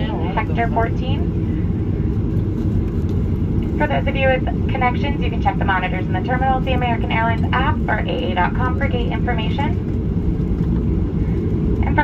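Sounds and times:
aircraft cabin rumble while taxiing: 0.0s - 12.0s.

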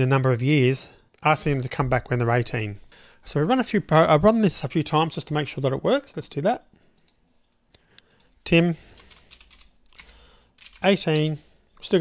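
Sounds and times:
keyboard keys clicking: 9.0s - 11.3s.

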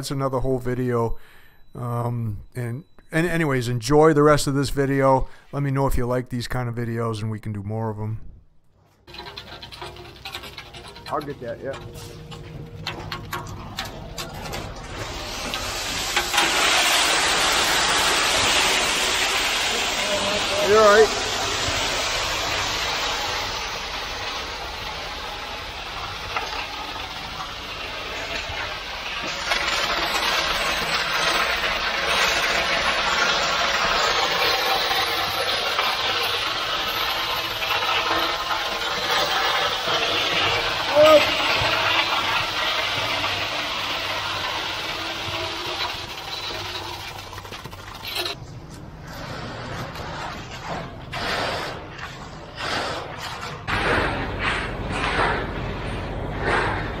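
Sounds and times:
knocks and scrapes: 8.8s - 16.6s, 45.2s - 57.0s
wet concrete rushing down chute: 9.0s - 48.4s, 49.0s - 57.0s.

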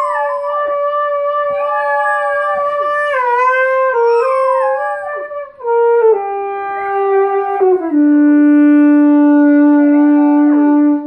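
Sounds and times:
puppy howling: 0.0s - 7.5s
saxophone long notes: 0.0s - 11.0s.

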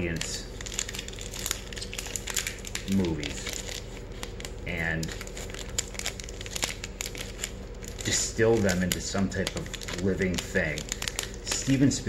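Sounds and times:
cards and packaging crinkling: 0.0s - 12.0s
low steady hum: 0.0s - 12.0s.

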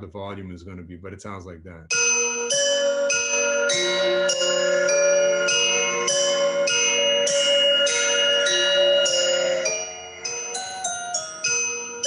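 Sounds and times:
bell-like looping melody: 1.9s - 12.0s.

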